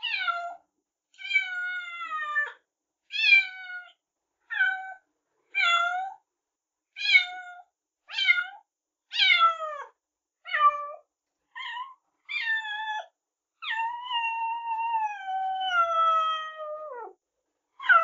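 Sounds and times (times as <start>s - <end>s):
cat meowing: 0.0s - 0.6s, 1.2s - 6.2s, 7.0s - 9.9s, 11.6s - 17.1s.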